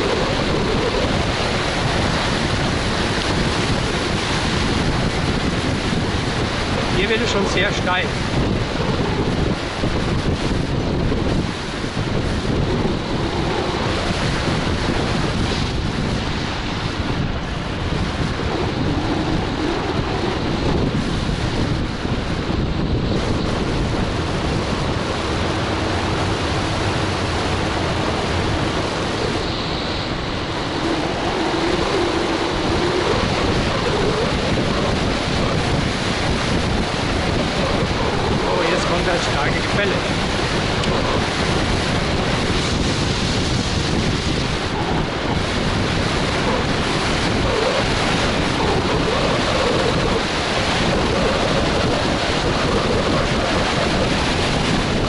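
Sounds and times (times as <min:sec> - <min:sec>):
road and tyre noise: 0:00.0 - 0:55.0
wind rushing over microphone: 0:00.0 - 0:55.0.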